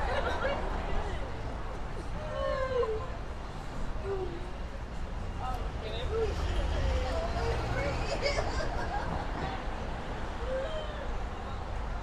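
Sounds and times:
low hum of street noise: 0.0 - 12.0.

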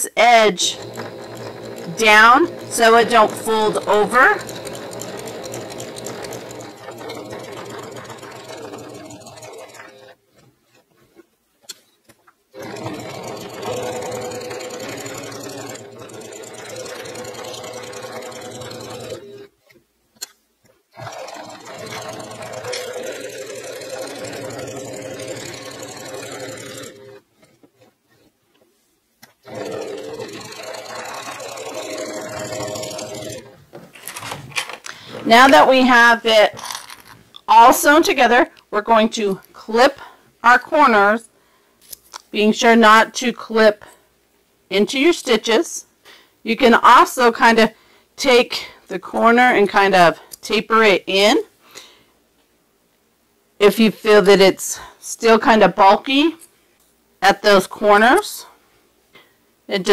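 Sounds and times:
electric sewing machine stitching: 0.4 - 10.2, 12.5 - 19.5, 21.0 - 27.2, 29.4 - 33.6.

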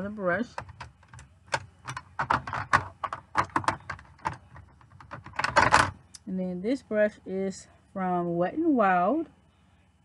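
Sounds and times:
makeup cases clattering: 0.4 - 6.0.

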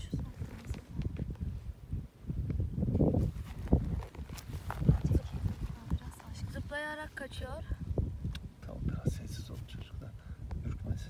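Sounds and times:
footsteps on dirt: 3.0 - 6.4.

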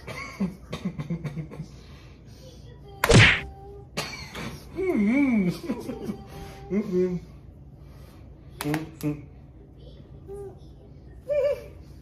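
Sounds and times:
tortilla smack on face: 3.0 - 3.5.

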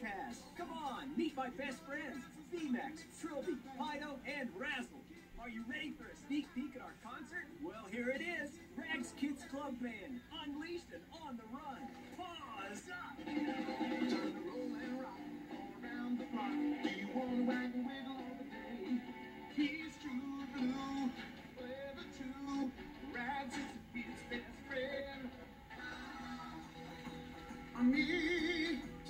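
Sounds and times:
children's song through tv speaker: 0.0 - 29.0.

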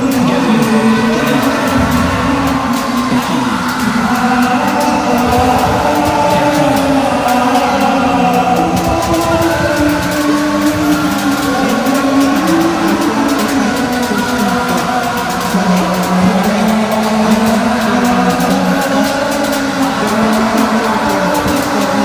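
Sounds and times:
distorted electric guitars: 0.0 - 22.0
drums and cymbals: 0.0 - 22.0.

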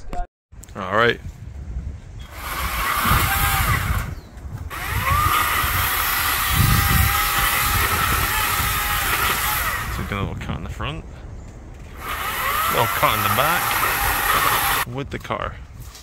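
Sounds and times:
chainsaw running at high revs: 2.3 - 4.1, 4.7 - 10.1, 12.0 - 14.9.

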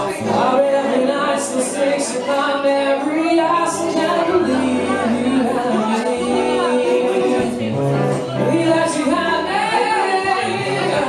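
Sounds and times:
acoustic guitar: 0.0 - 11.0
man singing: 0.0 - 11.0.

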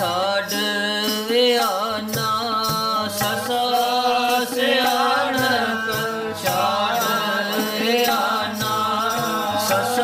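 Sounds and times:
harmonium: 0.0 - 10.0
man singing: 0.0 - 10.0
tabla strokes: 0.0 - 10.0.

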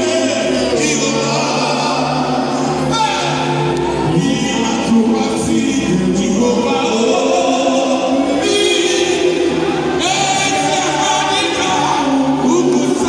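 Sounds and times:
gospel choir singing: 0.0 - 13.0
low musical accompaniment: 0.0 - 13.0.

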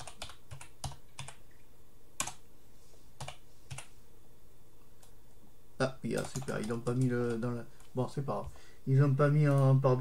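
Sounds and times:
computer keyboard typing: 0.0 - 1.5, 2.2 - 2.4, 3.2 - 3.9, 6.1 - 8.5.

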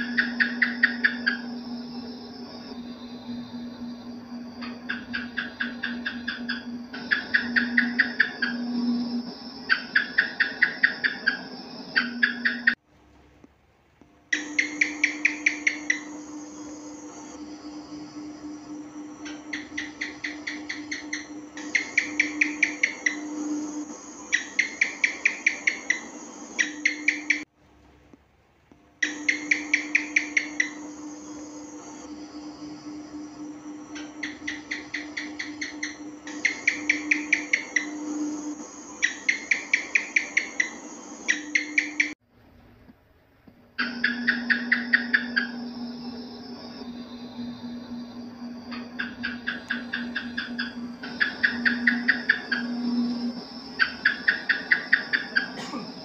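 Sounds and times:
gecko chirping rapid clicks: 0.0 - 12.8, 14.3 - 27.4, 29.0 - 42.2, 43.8 - 55.6
steady low hum: 0.0 - 56.0.

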